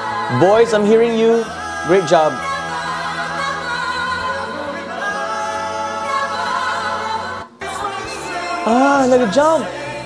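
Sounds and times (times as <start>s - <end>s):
singers in harmony with vibrato: 0.0s - 10.0s.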